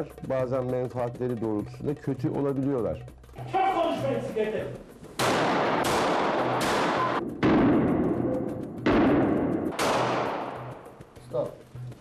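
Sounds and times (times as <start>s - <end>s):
pistol shots echoing: 5.2s - 10.9s.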